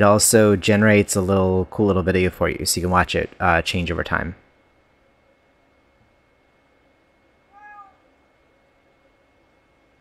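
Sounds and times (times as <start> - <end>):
cat meowing: 7.5 - 8.1.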